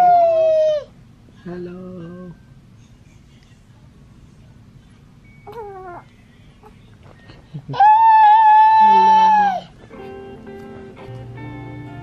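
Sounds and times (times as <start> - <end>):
baby cooing: 5.5 - 6.1.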